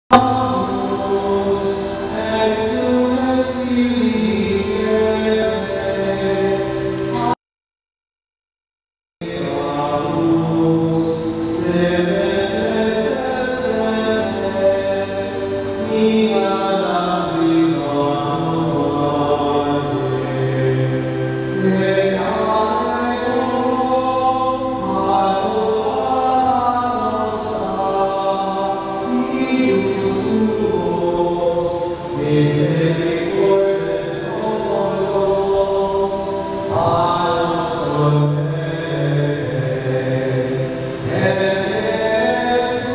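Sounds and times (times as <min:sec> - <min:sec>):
slow liturgical chant: 0:00.1 - 0:07.4, 0:09.2 - 0:42.9
voices singing a slow hymn: 0:00.1 - 0:07.4, 0:09.2 - 0:42.9.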